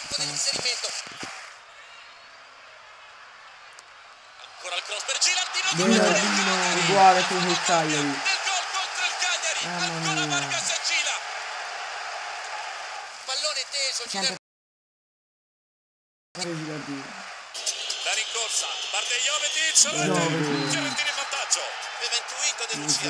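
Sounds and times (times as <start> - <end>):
stadium crowd cheering: 0.8 - 14.4, 17.1 - 23.0
long shouted voices: 5.2 - 12.9, 19.8 - 23.0.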